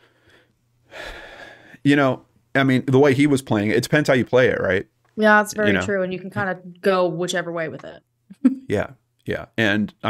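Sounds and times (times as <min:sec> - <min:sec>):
person breathing in: 0:00.0 - 0:01.8
person speaking: 0:02.8 - 0:06.7, 0:08.7 - 0:10.0.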